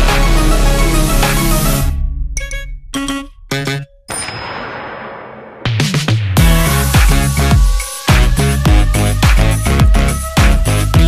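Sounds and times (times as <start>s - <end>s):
electronic background music: 0.0s - 11.0s
noisy crash with high ring: 4.1s - 5.8s.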